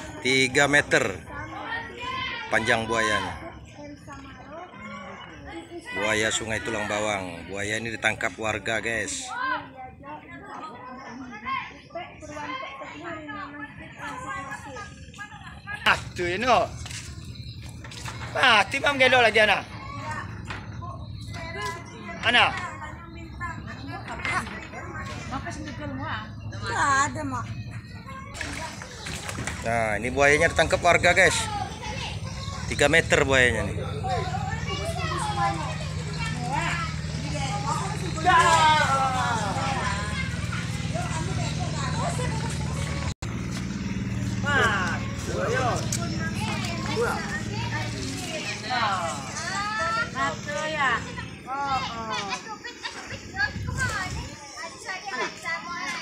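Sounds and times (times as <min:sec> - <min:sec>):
bystanders talking: 0:00.0 - 0:56.0
faint voices: 0:00.0 - 0:56.0
low engine hum: 0:28.5 - 0:51.5.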